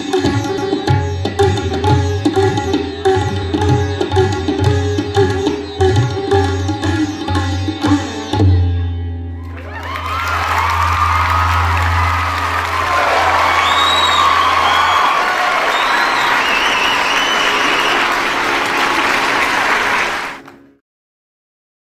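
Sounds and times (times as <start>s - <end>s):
cheers: 9.4s - 20.4s
audience clapping: 9.4s - 20.7s.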